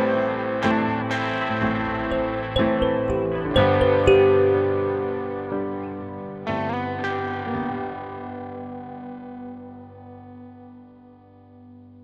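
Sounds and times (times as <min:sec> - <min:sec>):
electric guitar chord ringing: 0:00.0 - 0:10.5.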